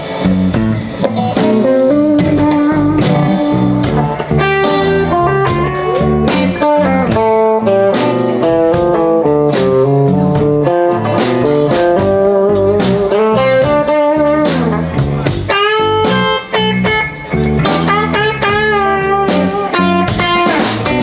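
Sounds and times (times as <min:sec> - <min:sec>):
drum kit steady beat: 0:00.0 - 0:21.0
electric guitars: 0:00.0 - 0:21.0
guitar lead line: 0:00.0 - 0:21.0.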